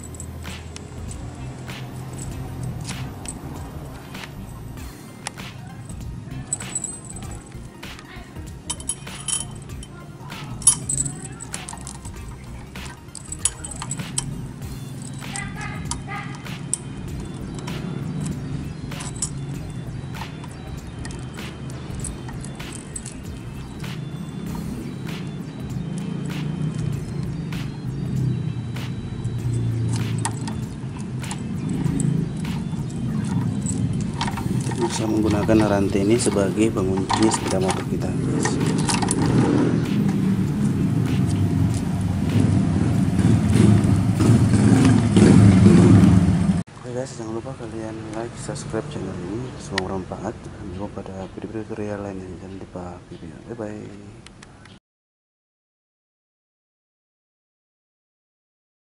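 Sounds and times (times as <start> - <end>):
metal chain clinking and rattling: 0.0 - 27.4, 29.2 - 42.4
background music: 0.0 - 51.2.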